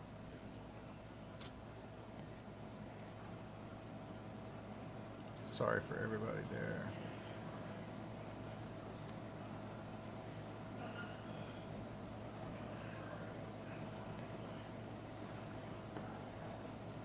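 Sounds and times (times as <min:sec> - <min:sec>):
electrical hum and hiss: 0:00.0 - 0:17.0.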